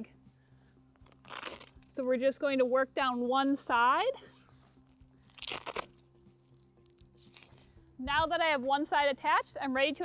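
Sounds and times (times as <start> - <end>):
hook-and-loop strap crackling: 0.9 - 2.1, 4.3 - 7.7.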